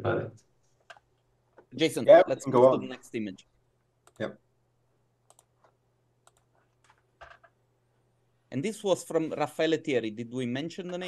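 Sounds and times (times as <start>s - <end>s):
computer mouse clicks: 4.0s - 4.3s, 5.2s - 7.6s.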